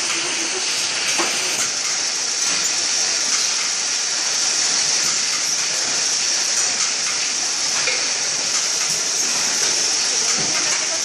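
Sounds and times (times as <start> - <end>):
belt conveyors running: 0.0 - 11.0
packing machinery hissing: 0.0 - 11.0.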